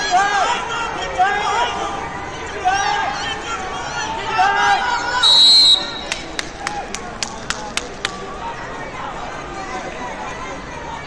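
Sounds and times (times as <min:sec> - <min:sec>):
crowd chatter: 0:00.0 - 0:11.0
referee's whistle blast: 0:05.2 - 0:06.2
sharp claps: 0:05.8 - 0:08.2.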